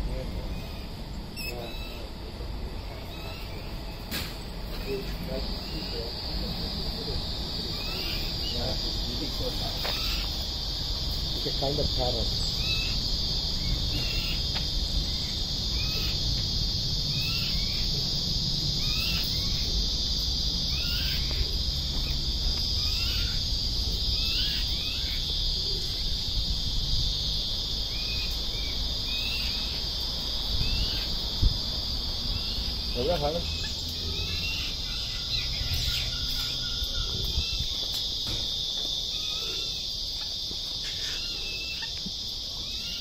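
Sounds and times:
high-pitched insect drone: 0.0 - 43.0.

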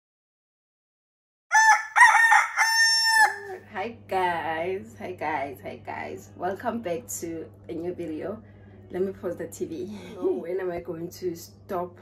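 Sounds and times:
rooster crowing: 1.5 - 3.6.

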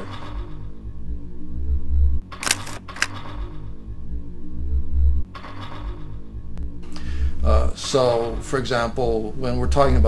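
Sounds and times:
low ambient drone: 0.0 - 10.0.

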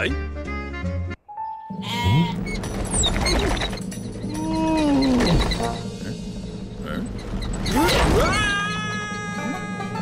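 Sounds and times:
background music: 0.0 - 10.0
cartoon sheep bleating: 1.8 - 2.4.

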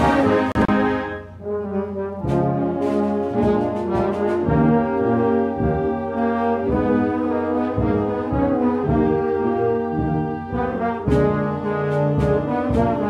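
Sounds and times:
brass band playing anthem: 0.0 - 13.0.

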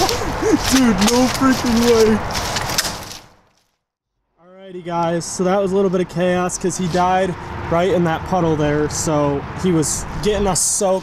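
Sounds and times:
turkey thrashing in puddle: 0.0 - 3.3.

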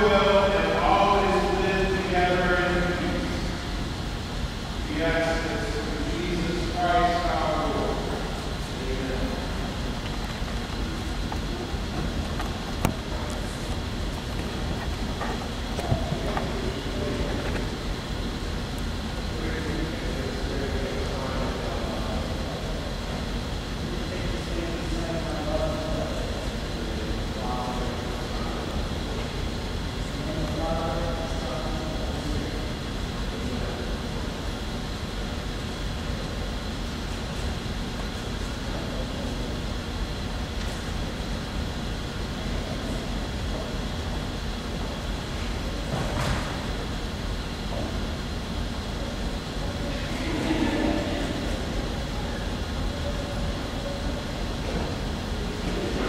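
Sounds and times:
faint high whine: 0.0 - 56.0
low rumble and hiss: 0.0 - 56.0
faint distant voices: 35.4 - 56.0.

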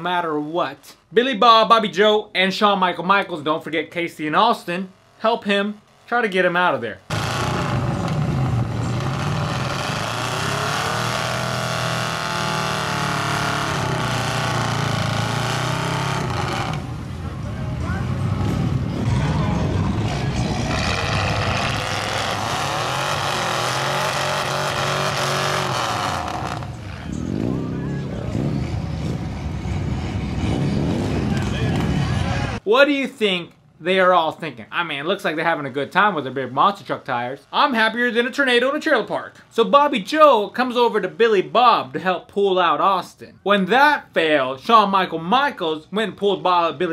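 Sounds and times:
truck engines revving hard: 7.0 - 32.6.

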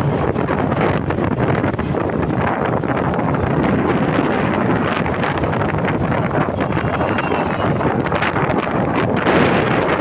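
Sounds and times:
vehicle running and road noise: 0.0 - 10.0
wind buffeting microphone: 0.0 - 10.0.

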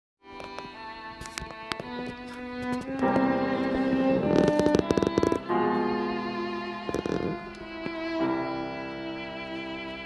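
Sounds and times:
piano: 0.2 - 10.0
violin: 0.2 - 10.0.

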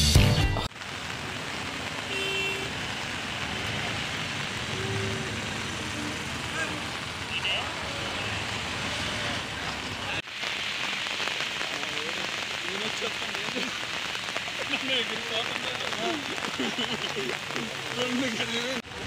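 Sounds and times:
hiss-like outdoor noise: 0.8 - 19.0.

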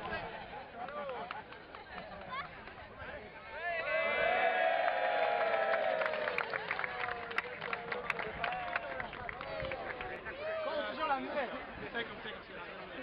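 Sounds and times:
scattered clapping: 0.8 - 3.0, 5.2 - 10.4.

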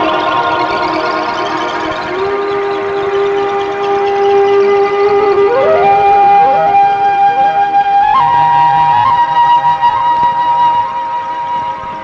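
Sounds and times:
held flute note: 0.0 - 12.0.

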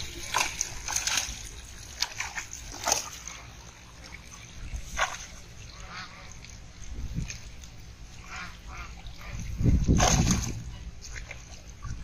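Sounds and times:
fish splashing in net: 0.0 - 6.6, 8.2 - 11.4.

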